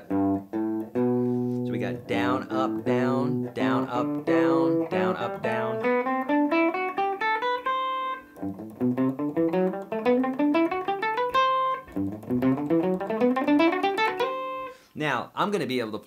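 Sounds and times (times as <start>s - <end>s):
electric guitar playing a scale: 0.0s - 14.8s.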